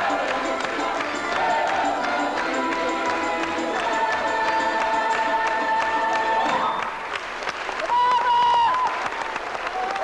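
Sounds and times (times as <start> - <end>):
audience applause: 0.0 - 10.0.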